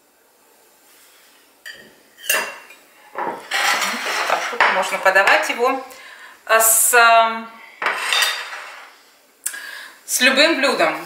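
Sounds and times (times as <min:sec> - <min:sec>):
plate clattering on tiled countertop: 0:01.7 - 0:05.5, 0:07.8 - 0:08.9.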